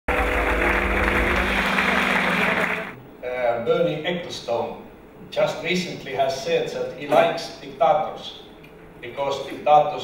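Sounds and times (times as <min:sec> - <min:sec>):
audience applauding: 0:00.1 - 0:03.0.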